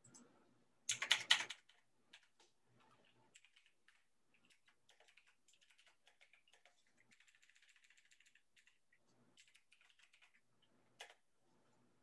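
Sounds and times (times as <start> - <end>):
computer keyboard typing: 0.9 - 11.2.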